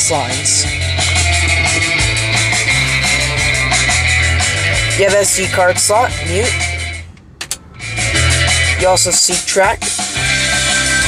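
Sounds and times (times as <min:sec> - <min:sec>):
music on car stereo: 0:00.0 - 0:11.0.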